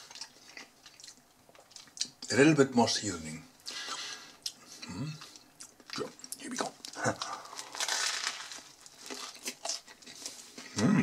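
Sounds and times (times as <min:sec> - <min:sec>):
chewing with crisp crunches: 0:00.0 - 0:02.3, 0:03.7 - 0:10.9.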